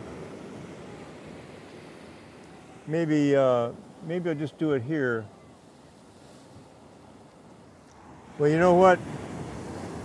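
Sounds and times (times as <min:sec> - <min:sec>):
distant ocean surf: 0:00.0 - 0:10.0.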